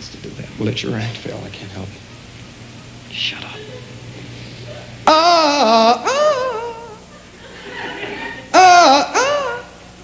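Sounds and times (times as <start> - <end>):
high-pitched puppet voice crying: 5.0 - 7.0, 8.5 - 9.7
audience laughing: 5.7 - 9.6.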